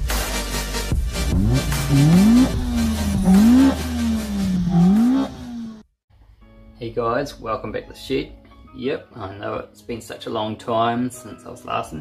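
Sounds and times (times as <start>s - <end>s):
car engine revving: 1.1s - 5.8s.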